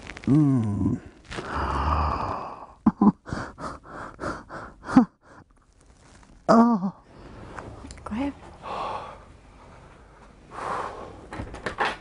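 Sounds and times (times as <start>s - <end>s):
man groaning: 0.3s - 2.8s
man breathing hard: 1.4s - 5.4s, 8.6s - 9.3s, 10.5s - 11.3s.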